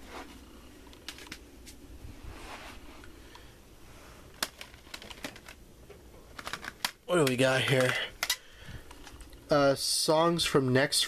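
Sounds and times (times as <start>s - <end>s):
plastic cd cases clicking: 0.9s - 1.4s, 4.3s - 5.6s, 6.2s - 9.4s.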